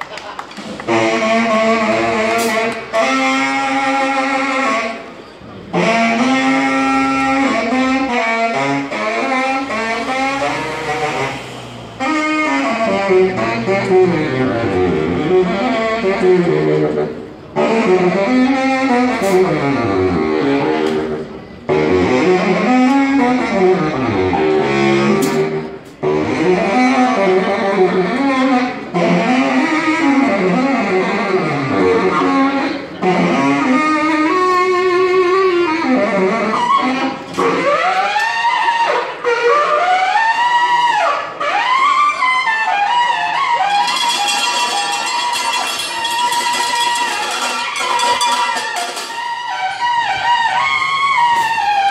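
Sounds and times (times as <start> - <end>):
saxophone runs: 0.6 - 41.1, 42.4 - 51.9.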